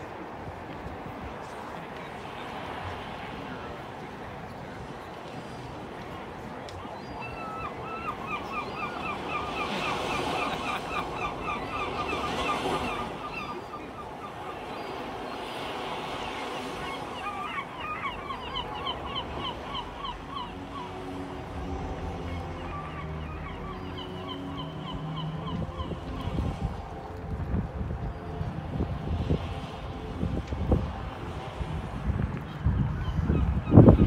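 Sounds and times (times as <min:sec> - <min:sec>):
water-like noise: 0:00.0 - 0:33.9
low sustained tones: 0:05.6 - 0:33.6.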